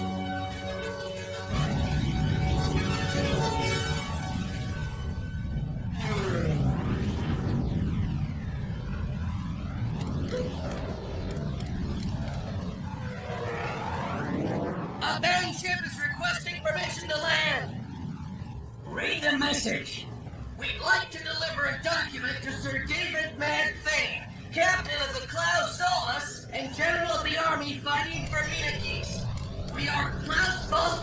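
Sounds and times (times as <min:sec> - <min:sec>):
dramatic music: 0:00.0 - 0:13.8
cannon fire and explosions: 0:01.5 - 0:20.6
voices: 0:18.8 - 0:31.0.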